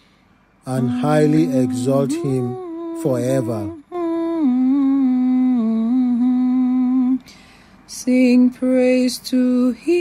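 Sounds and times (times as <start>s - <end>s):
person humming: 0.7s - 7.2s.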